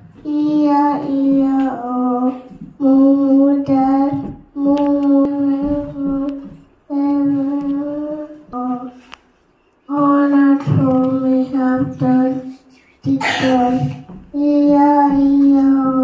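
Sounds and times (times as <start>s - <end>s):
boy singing unaccompanied: 0.2s - 9.1s, 9.9s - 16.0s.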